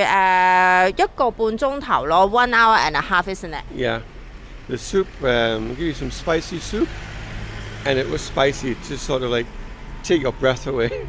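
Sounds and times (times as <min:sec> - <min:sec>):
street traffic hum: 0:00.0 - 0:11.0
person speaking: 0:10.7 - 0:11.0.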